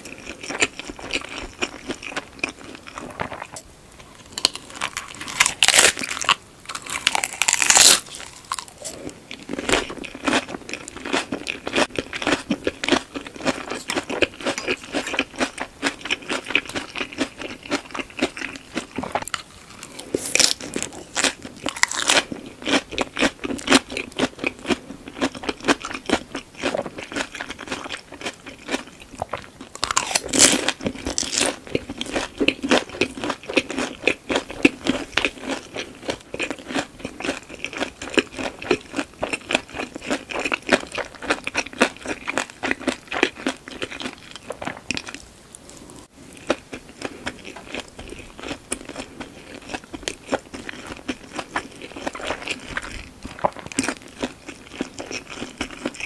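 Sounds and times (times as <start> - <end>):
lettuce crunching being chewed: 0.0 - 3.6, 4.2 - 56.0.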